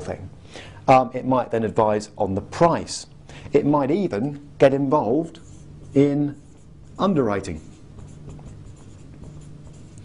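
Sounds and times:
marker writing on whiteboard: 4.8 - 10.0.

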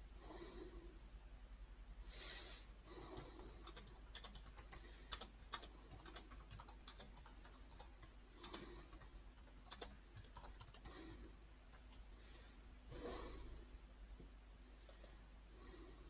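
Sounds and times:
soft breath: 0.0 - 1.0, 2.0 - 3.8, 8.2 - 9.2, 10.7 - 13.8, 14.7 - 16.0
typing on computer keyboard: 3.1 - 12.0.

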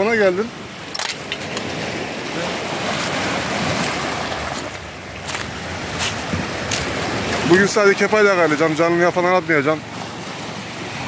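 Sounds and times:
waves washing over pebbly shore: 0.5 - 11.0.

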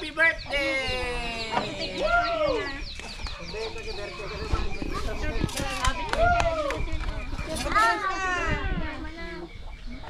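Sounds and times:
indistinct chatter: 0.0 - 10.0
chickens squawking: 0.3 - 5.6.

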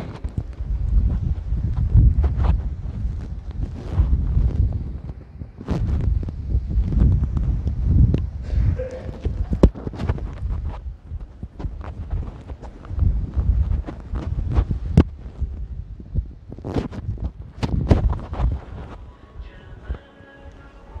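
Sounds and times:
microphone clip knocks and clicks: 0.0 - 19.0
microphone cable rubbing: 0.0 - 21.0.

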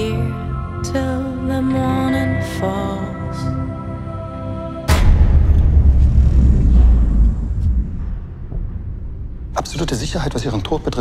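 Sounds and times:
deep cinematic boom: 4.9 - 10.4.

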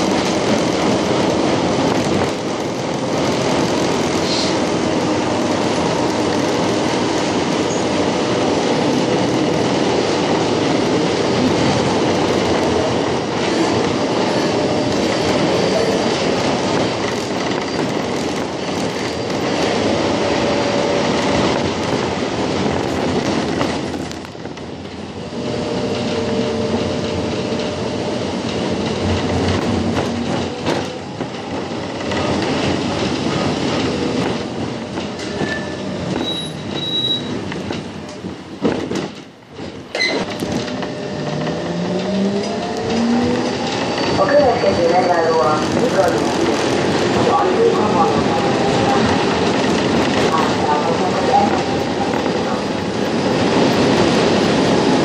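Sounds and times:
tram wheels rumbling on rails: 0.0 - 55.0
wheel squeal: 35.2 - 37.4.

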